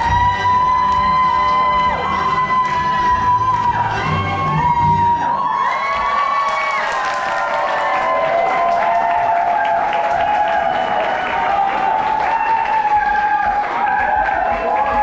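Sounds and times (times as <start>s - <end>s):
music: 0.0s - 6.3s, 8.5s - 15.0s
audience clapping and cheering: 0.0s - 15.0s.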